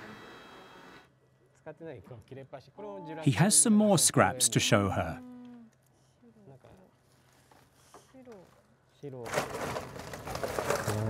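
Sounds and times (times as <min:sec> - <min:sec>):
voices talking: 0:03.2 - 0:05.2
paper bag rustling: 0:09.3 - 0:11.0.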